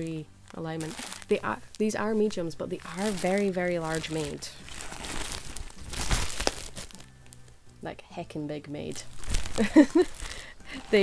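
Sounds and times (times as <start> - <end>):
plastic backing crinkling: 0.0 - 7.6, 9.0 - 11.0.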